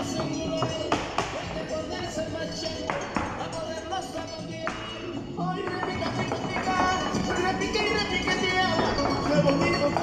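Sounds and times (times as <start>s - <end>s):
folk dance music: 0.0s - 10.0s
shoes tapping on hard floor: 4.6s - 10.0s.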